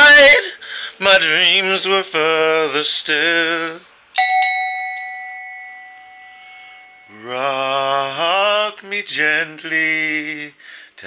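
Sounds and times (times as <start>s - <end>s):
copper bell ringing: 4.2s - 7.2s.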